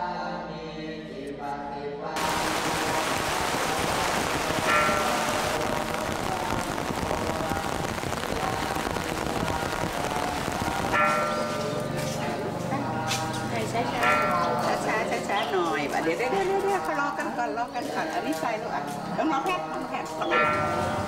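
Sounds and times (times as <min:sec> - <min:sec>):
heavy rain: 0:02.2 - 0:12.1.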